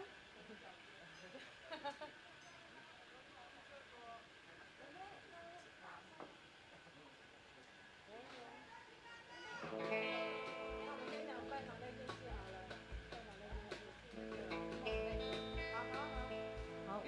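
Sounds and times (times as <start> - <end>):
ringing guitar chords: 9.6 - 13.2, 14.2 - 17.0.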